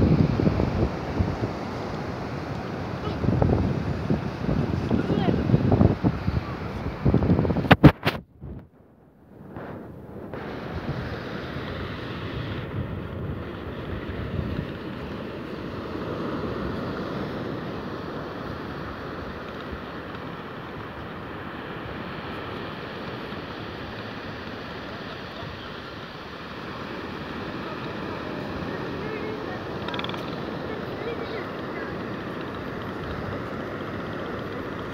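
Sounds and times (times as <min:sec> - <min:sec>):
surf breaking on beach: 0:00.0 - 0:08.6, 0:09.4 - 0:34.9
wind across microphone: 0:00.0 - 0:34.9.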